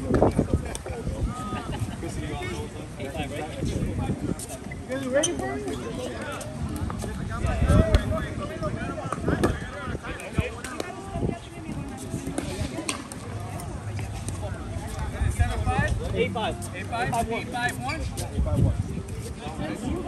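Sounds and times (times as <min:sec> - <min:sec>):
overlapping voices talking: 0:00.0 - 0:20.0.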